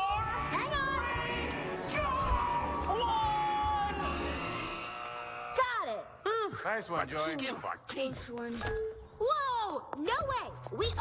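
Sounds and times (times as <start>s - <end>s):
background film music: 0.0s - 7.8s.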